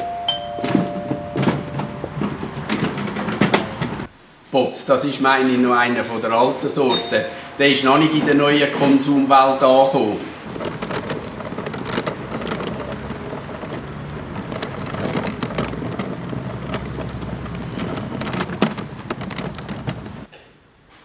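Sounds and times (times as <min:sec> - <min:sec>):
hand cart rattling over asphalt: 0:00.3 - 0:04.1, 0:10.4 - 0:20.3.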